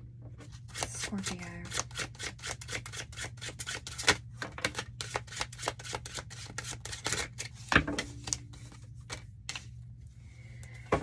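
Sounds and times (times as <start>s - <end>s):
cards being shuffled: 0.6s - 9.8s.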